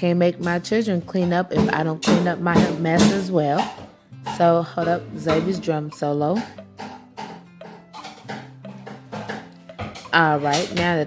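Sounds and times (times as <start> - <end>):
quiet background music: 0.0 - 11.0
child beating small drum: 5.9 - 11.0.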